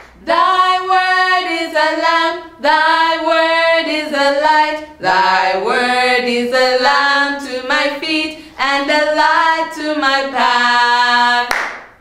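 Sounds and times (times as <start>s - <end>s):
woman and girl singing: 0.2s - 11.5s.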